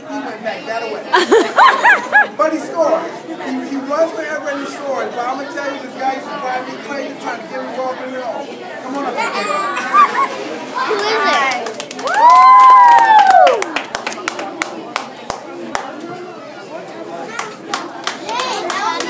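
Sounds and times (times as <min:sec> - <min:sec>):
children and adults chattering: 0:00.0 - 0:12.0, 0:13.6 - 0:19.0
sharp claps: 0:11.3 - 0:15.9, 0:17.4 - 0:19.0
high-voiced cheer: 0:12.0 - 0:13.8.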